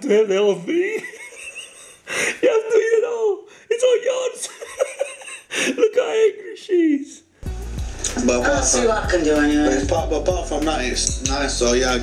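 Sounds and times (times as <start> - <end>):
man laughing heartily: 0.6 - 2.4, 4.4 - 5.9
music with low beat: 7.4 - 12.0.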